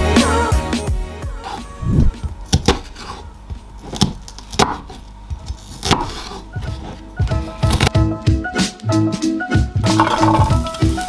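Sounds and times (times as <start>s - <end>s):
background music: 0.0s - 4.8s, 5.8s - 11.0s
knife chopping on wooden board: 2.5s - 3.2s, 3.8s - 7.0s.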